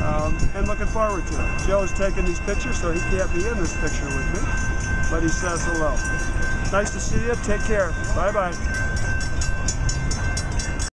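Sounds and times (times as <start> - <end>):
traffic rumble: 0.0 - 10.9
wind buffeting microphone: 0.0 - 10.9.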